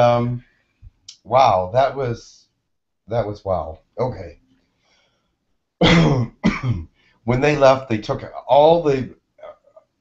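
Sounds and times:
man clearing his throat: 5.8 - 7.0.

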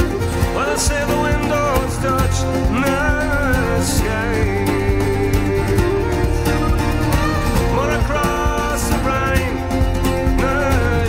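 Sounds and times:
folk band playing: 0.0 - 11.0
steady bass: 0.0 - 11.0
strummed acoustic guitar: 0.0 - 11.0.

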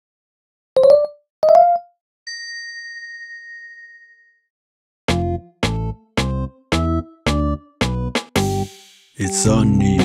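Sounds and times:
bell-like chime ringing: 1.5 - 4.5.

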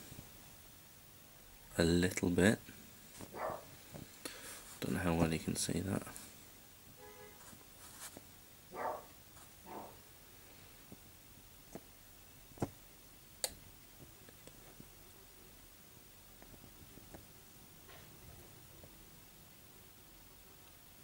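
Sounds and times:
soft breaths: 2.6 - 5.0, 6.0 - 6.7, 9.7 - 11.2.

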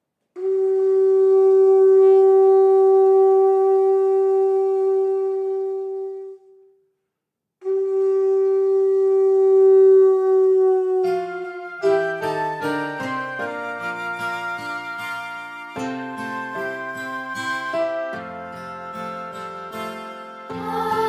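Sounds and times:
conch shell trumpet blasts: 0.4 - 6.4, 7.6 - 15.8.

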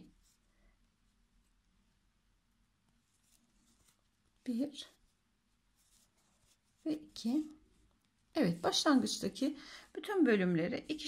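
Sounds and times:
faint rustles: 2.8 - 8.5.

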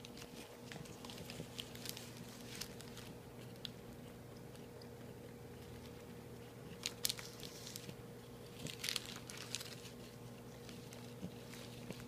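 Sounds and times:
plastic bag crinkling: 0.0 - 3.8, 6.7 - 12.0.

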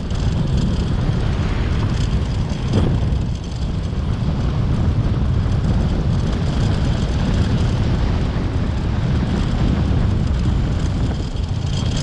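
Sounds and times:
vehicle road rumble: 0.0 - 12.0
wind buffeting microphone: 0.0 - 12.0.

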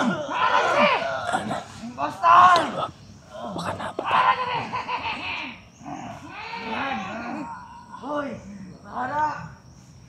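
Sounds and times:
people crying out: 0.0 - 8.2.

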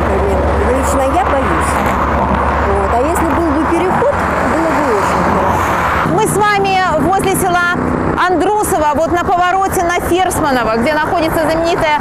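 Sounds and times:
people talking: 0.0 - 2.0, 2.6 - 5.5, 6.1 - 12.0
traffic passing on busy road: 0.0 - 12.0.

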